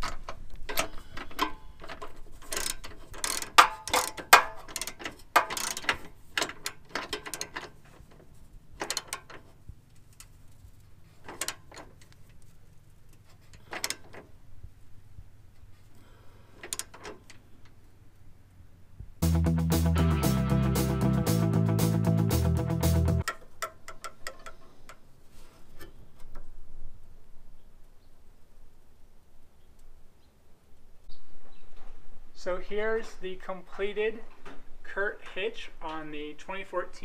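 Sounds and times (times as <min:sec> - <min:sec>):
socket ratchet clicking: 0:02.4 - 0:07.6.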